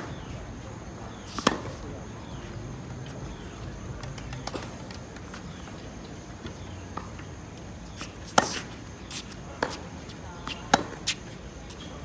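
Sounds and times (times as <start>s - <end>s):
racket hitting tennis ball: 1.2s - 1.8s, 8.0s - 11.2s
tennis ball bouncing on court: 1.3s - 1.8s, 10.4s - 11.2s.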